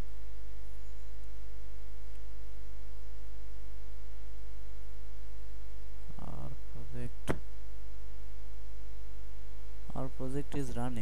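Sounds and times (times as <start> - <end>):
electrical mains hum: 0.0 - 11.0
sharp click: 7.2 - 7.5.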